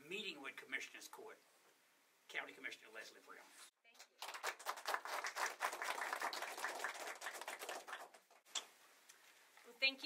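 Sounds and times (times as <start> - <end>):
audience applauding: 4.0 - 8.4.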